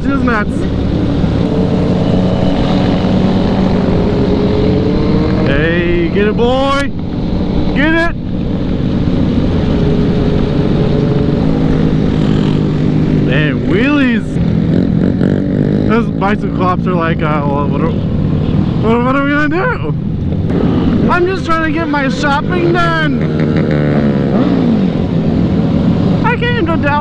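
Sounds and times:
motorcycle engines droning: 0.0s - 27.0s
motorcycles revving: 0.0s - 27.0s
wind noise: 0.0s - 27.0s.

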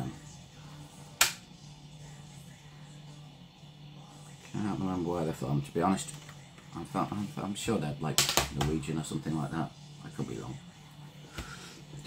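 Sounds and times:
faint black metal music: 0.0s - 12.0s.

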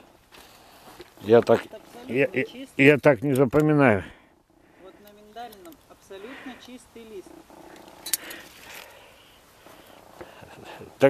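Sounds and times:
faint rustling: 4.0s - 11.0s
leaves and twigs crackling: 4.9s - 10.5s.

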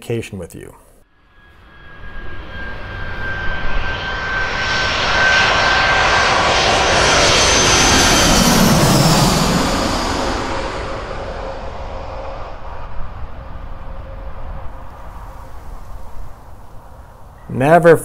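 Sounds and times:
high jet engine whine: 0.9s - 18.0s
jet airliner passing overhead: 1.0s - 18.0s.

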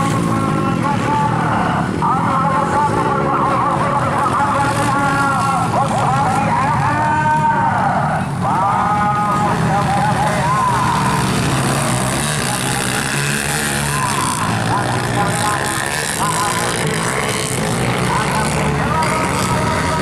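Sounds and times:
dirt bike engines revving: 0.0s - 20.0s.

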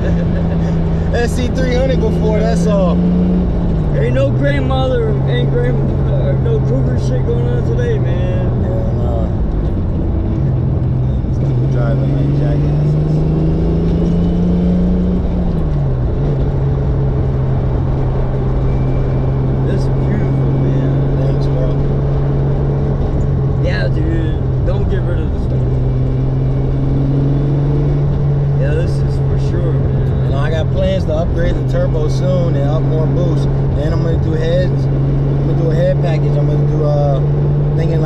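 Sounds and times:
car engine drone from cabin: 0.0s - 38.0s.

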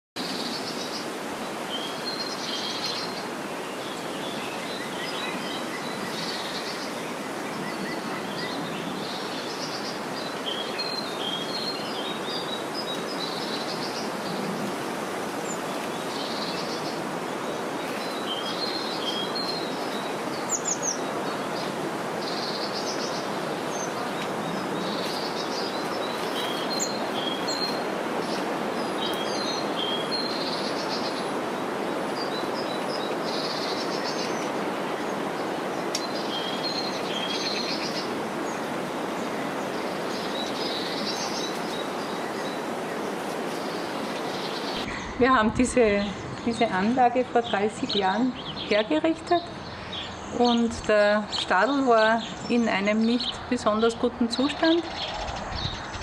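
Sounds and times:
songbirds chirping and singing: 0.3s - 56.0s
steady rushing background noise: 53.4s - 56.0s.

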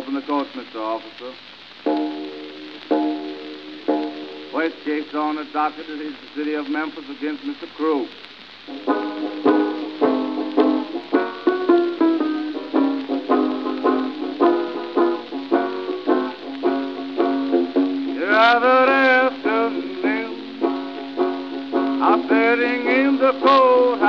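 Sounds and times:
banjo picking: 1.9s - 6.5s, 8.7s - 24.0s.

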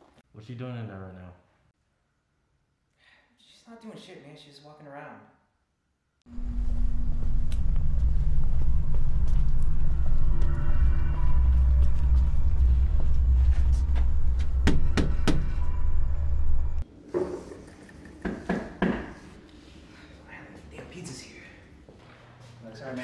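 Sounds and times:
loud low rumble: 6.3s - 16.8s
sharp knocks: 14.6s - 15.6s.

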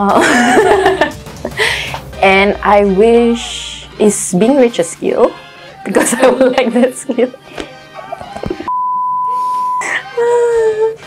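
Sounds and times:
voice: 2.2s - 7.3s
censor bleep: 8.7s - 10.0s.

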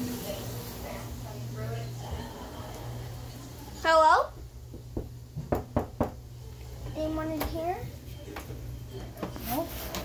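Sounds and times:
knocking on a door: 4.4s - 6.2s.

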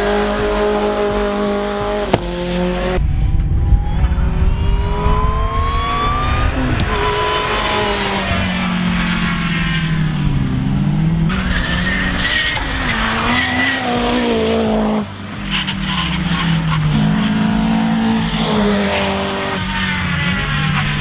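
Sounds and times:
race car engines revving: 0.0s - 21.0s.

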